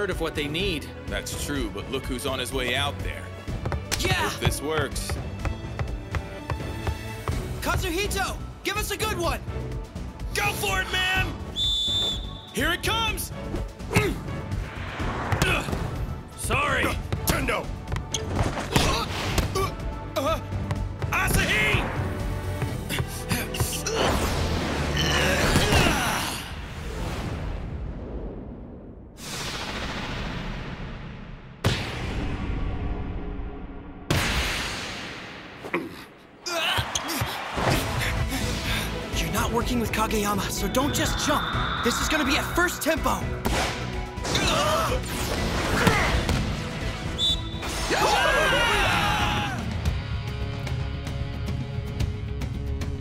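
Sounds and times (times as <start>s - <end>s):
background music: 0.0s - 28.2s, 31.6s - 53.0s
rush of noise: 40.9s - 43.4s
person shouting: 47.9s - 49.7s.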